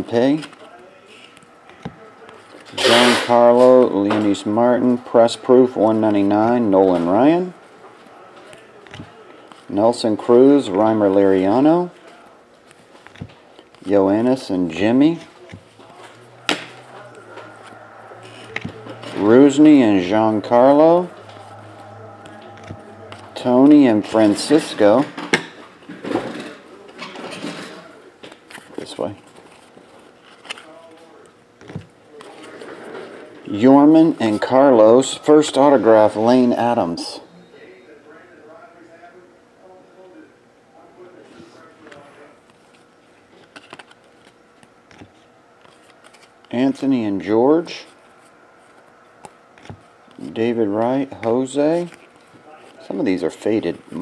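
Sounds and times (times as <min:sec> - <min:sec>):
low steady hum: 0:00.0 - 0:54.0
trading cards flipped by hand: 0:43.4 - 0:46.6.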